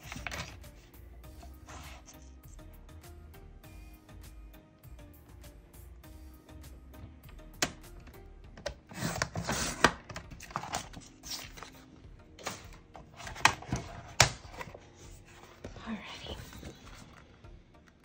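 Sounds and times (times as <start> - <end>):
paper handling clicks and taps: 0.0 - 0.7, 7.3 - 11.8, 12.4 - 14.8
soft background music: 0.0 - 18.0.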